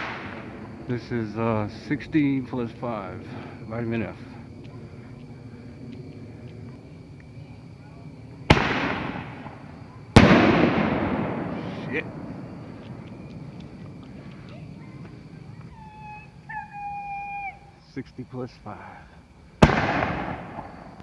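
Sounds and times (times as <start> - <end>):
firework launch bang: 0.0 - 0.7, 8.5 - 12.5, 19.6 - 21.0
firework burst echoing: 0.0 - 0.9, 8.4 - 13.8, 19.6 - 21.0.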